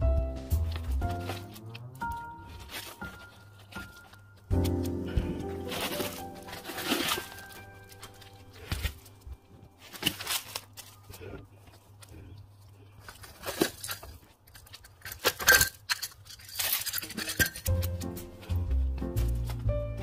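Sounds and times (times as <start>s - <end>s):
background music: 0.0s - 11.2s, 17.4s - 20.0s
gravel being handled: 0.7s - 12.2s
plastic plant pots clinking: 0.8s - 18.6s.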